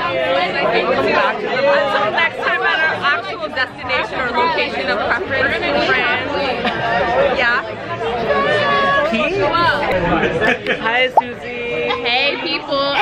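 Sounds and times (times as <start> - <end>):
crowd of voices chattering: 0.0 - 13.0.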